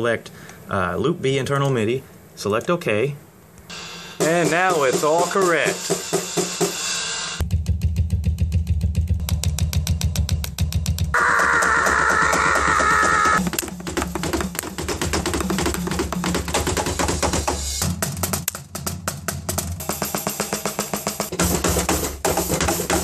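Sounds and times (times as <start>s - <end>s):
drum kit fast beat: 3.7s - 23.0s.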